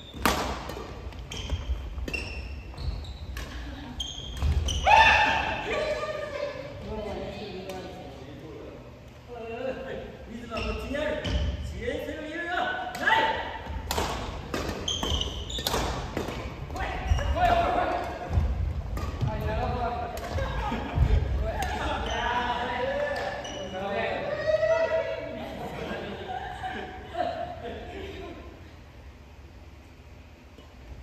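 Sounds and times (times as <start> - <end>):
racket striking shuttlecock: 13.7 - 16.7.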